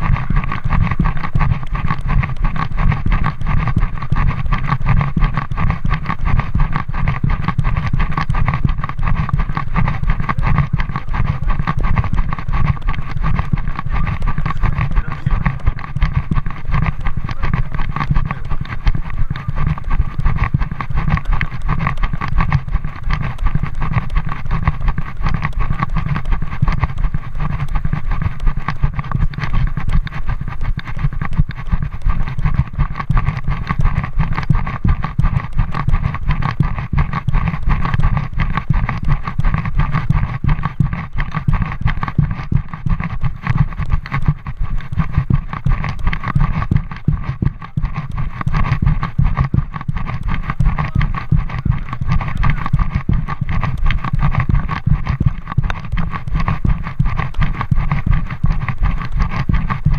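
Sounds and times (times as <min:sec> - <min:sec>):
rumbling and scuffing on microphone: 0:00.0 - 0:59.9
walking and running steps: 0:00.0 - 0:59.9.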